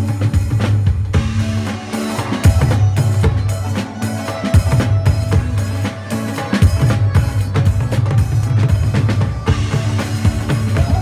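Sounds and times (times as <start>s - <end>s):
driving drum beat: 0.0s - 11.0s
live band playing pop music: 0.0s - 11.0s.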